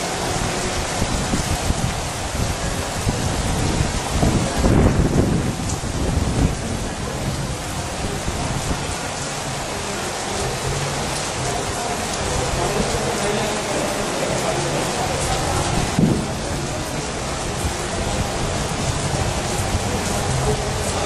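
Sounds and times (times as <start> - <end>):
heavy rain hissing: 0.0 - 21.0.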